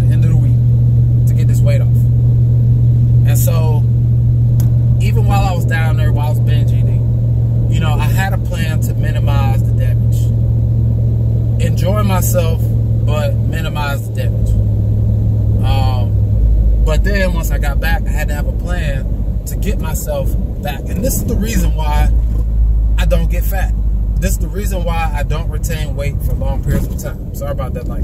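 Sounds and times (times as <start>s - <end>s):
man talking: 0.0s - 0.6s, 1.3s - 2.0s, 3.2s - 3.9s, 5.0s - 7.0s, 7.7s - 10.3s, 11.6s - 14.5s, 15.6s - 16.2s, 16.8s - 22.2s, 23.0s - 28.0s
truck engine and road noise: 0.0s - 28.0s.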